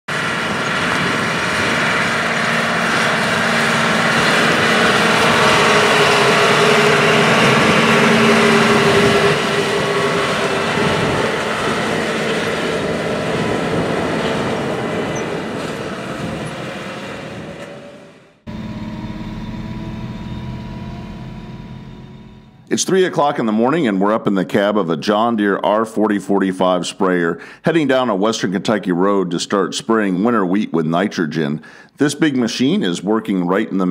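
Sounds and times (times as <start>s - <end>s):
low engine drone from cab: 0.1s - 22.8s
sprayer engine driving past: 0.1s - 23.2s.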